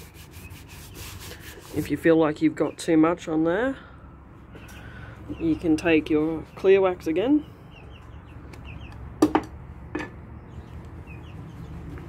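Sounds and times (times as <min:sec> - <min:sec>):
faint bird calls: 0:04.5 - 0:05.4.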